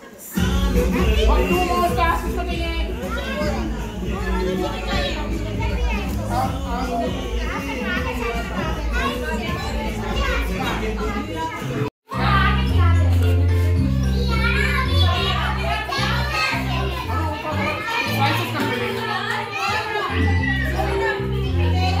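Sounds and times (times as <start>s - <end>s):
children talking and calling out: 0.0s - 22.0s
background music with bass line: 0.4s - 11.2s.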